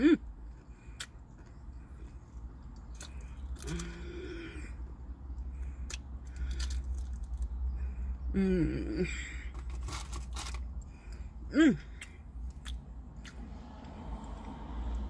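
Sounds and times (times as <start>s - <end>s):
person chewing crunchy food: 0.4s - 7.8s, 9.6s - 11.2s
person humming mm: 8.3s - 9.2s.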